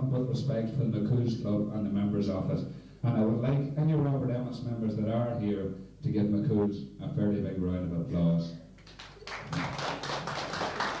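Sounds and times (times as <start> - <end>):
audience applauding: 8.8 - 11.0.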